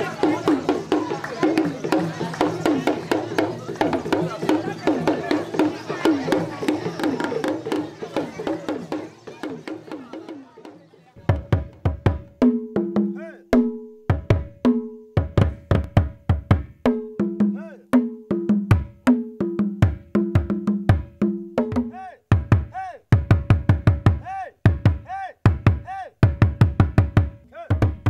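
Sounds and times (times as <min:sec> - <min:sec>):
hand drum rhythm: 0:00.0 - 0:28.0.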